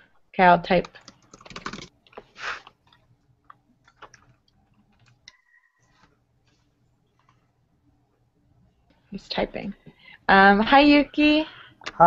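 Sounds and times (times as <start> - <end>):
keyboard typing clicks: 0.8 - 1.9.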